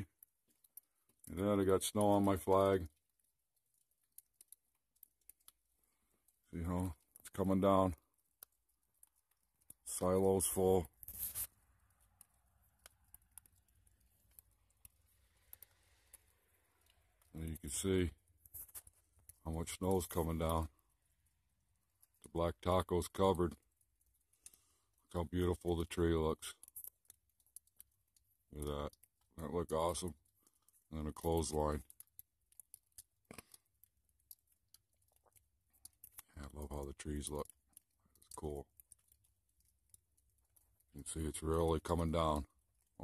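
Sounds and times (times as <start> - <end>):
faint clicks: 0.0 - 43.0.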